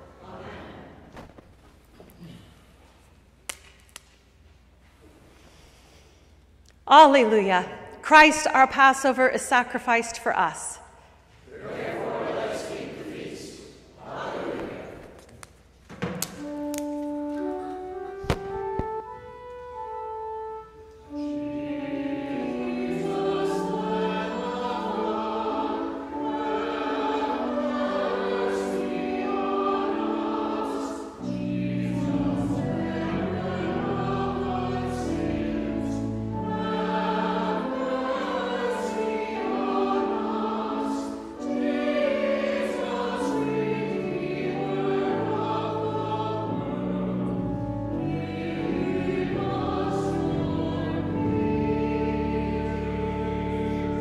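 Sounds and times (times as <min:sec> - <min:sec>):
choir singing: 0:00.0 - 0:01.1, 0:11.4 - 0:15.2, 0:20.6 - 0:54.0
organ chords: 0:16.2 - 0:54.0.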